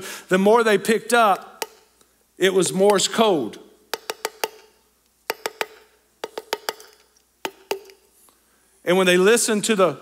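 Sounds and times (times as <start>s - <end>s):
sharp taps on a cup: 3.9s - 4.7s, 5.3s - 8.0s.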